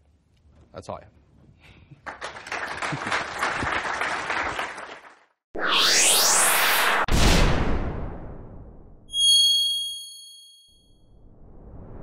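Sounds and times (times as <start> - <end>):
rising whoosh: 5.6 - 8.7, 11.2 - 12.0
high-pitched bell ding: 9.1 - 11.0.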